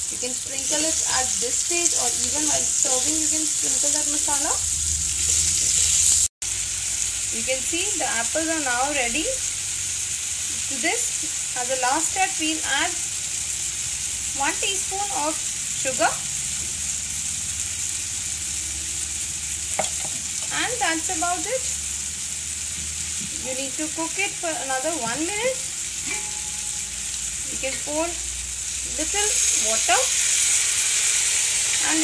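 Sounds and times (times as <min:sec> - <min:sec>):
apple slices sizzling in pan: 0:00.0 - 0:32.0.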